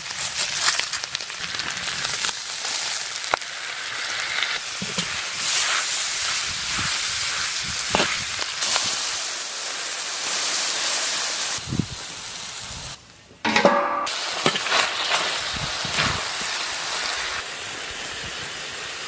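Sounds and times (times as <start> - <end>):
meat sizzling in a wok: 0.0 - 13.0, 14.1 - 19.0.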